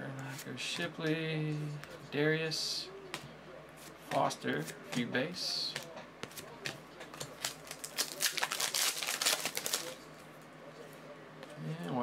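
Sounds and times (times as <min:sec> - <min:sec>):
foil wrapper tearing and crinkling: 0:07.4 - 0:10.0.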